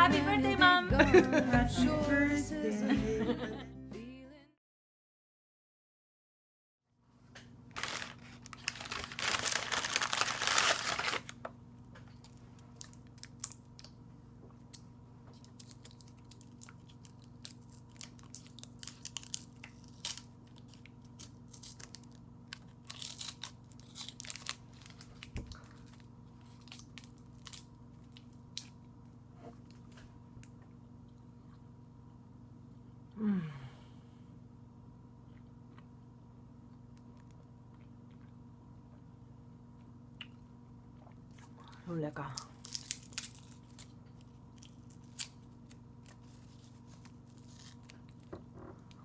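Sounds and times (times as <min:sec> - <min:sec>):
paper liner crinkling and tearing: 0:07.7 - 0:11.4, 0:15.4 - 0:28.7, 0:42.6 - 0:48.3.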